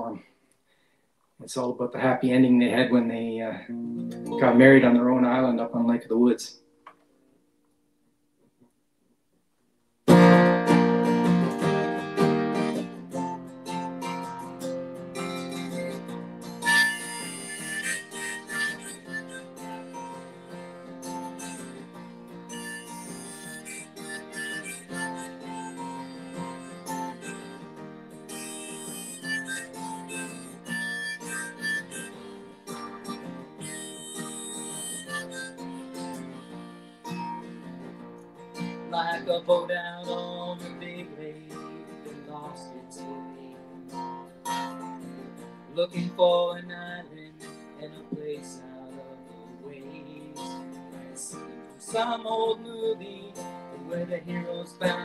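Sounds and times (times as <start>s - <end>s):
acoustic guitar: 0.0s - 7.8s, 10.0s - 55.0s
harmonica: 10.1s - 48.2s, 49.0s - 55.0s.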